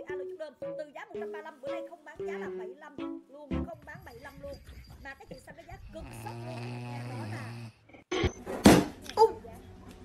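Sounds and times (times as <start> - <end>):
puppy snoring: 5.9 - 7.8.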